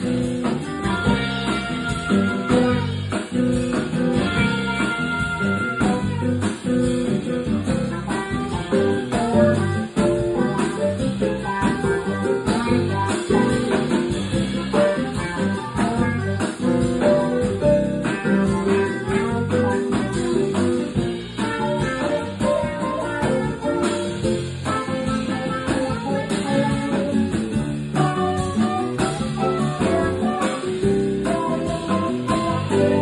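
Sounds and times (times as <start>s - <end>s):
electric guitar: 0.0s - 33.0s
small jazz band playing: 0.0s - 33.0s.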